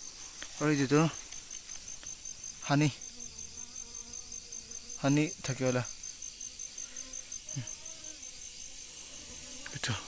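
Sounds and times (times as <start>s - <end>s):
insect chirping: 0.0s - 10.0s.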